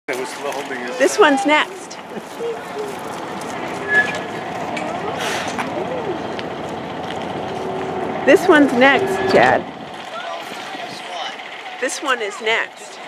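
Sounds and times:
trolley car rolling noise: 0.1 - 13.0.

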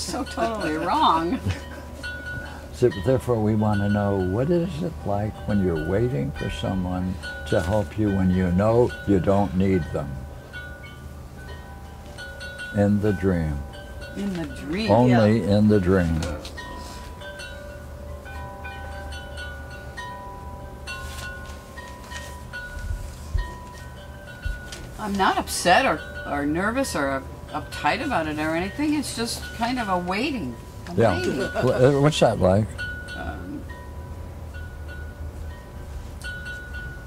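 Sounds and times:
wind chimes ringing: 0.0 - 37.0.

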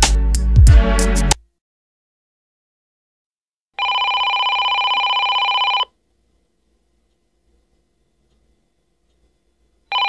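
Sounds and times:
electronic telephone ring: 3.8 - 6.0.

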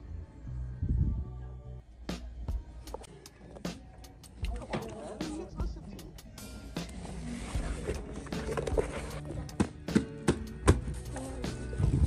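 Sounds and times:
books being leafed through: 6.8 - 11.9
sharp knocks of books: 9.5 - 10.9.

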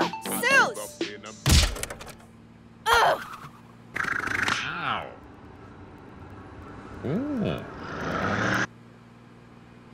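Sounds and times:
cartoon heavy thunk impact: 1.4 - 2.0.

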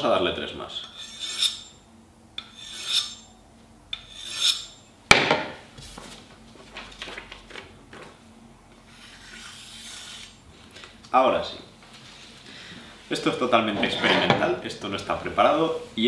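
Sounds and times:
knife scraping on ceramic rod: 0.8 - 1.8, 2.4 - 3.3, 4.0 - 4.8, 8.9 - 10.4.

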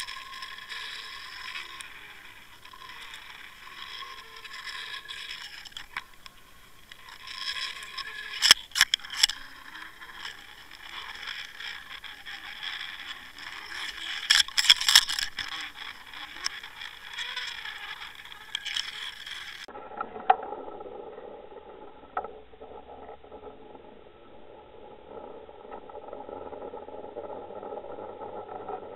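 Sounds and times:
sharp underwater clicks: 0.0 - 19.7
underwater scraping and rustling: 0.0 - 28.9.

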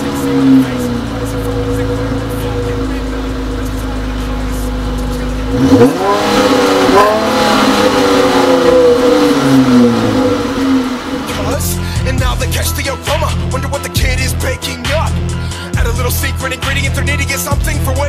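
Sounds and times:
car engine idling: 0.0 - 18.0
car engine revving: 0.0 - 18.0.

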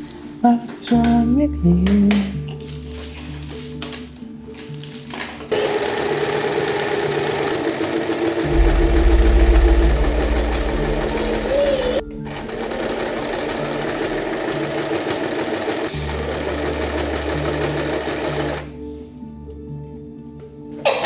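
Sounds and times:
electric sewing machine running: 5.5 - 8.5, 10.1 - 18.7.

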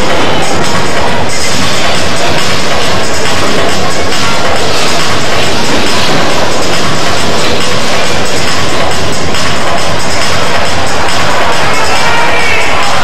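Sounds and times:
loud music: 0.0 - 13.0.

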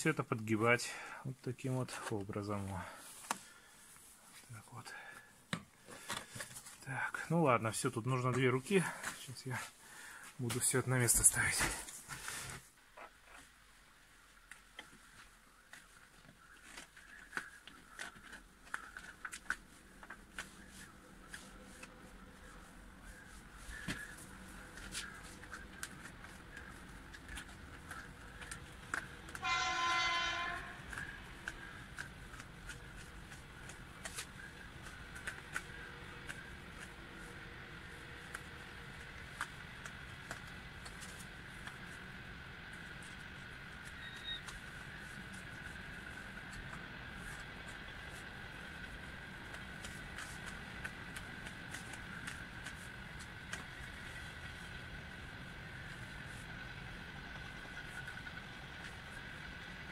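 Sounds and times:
faint hum: 0.1 - 59.9
horn note: 29.4 - 30.9.

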